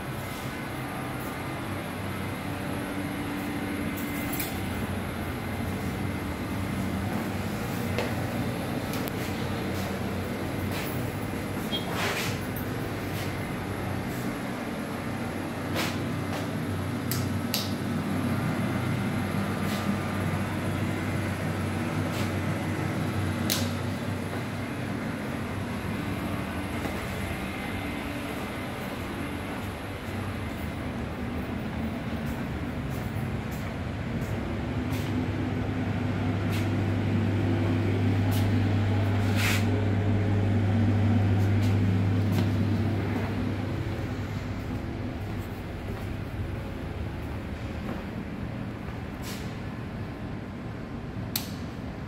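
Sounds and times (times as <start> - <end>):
air conditioning hum: 0.0 - 52.0.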